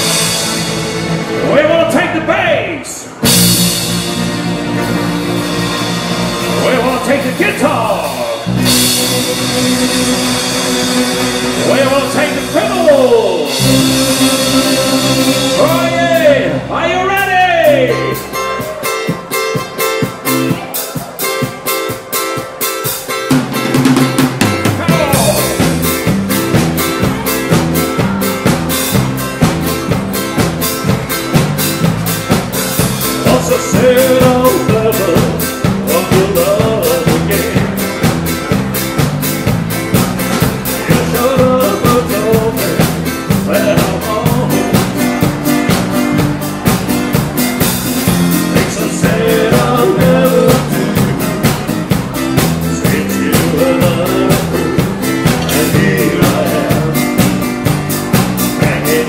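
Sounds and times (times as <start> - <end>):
drum kit beat: 0.0 - 1.7, 3.1 - 59.0
bass guitar: 0.0 - 59.0
guitars: 0.0 - 59.0.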